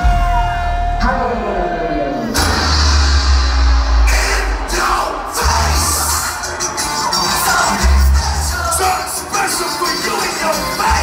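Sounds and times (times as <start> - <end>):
loud live concert music: 0.0 - 11.0
people shouting: 4.0 - 9.6.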